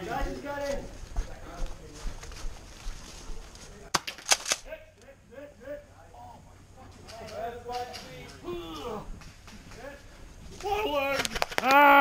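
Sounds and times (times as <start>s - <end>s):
airsoft guns firing pops: 3.9s - 4.6s
distant voices calling out: 4.7s - 9.2s.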